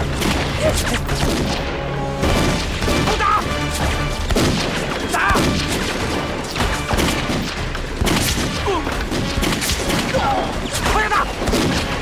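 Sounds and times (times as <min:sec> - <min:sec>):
background music: 0:00.0 - 0:12.0
rifle and pistol shots: 0:00.0 - 0:12.0.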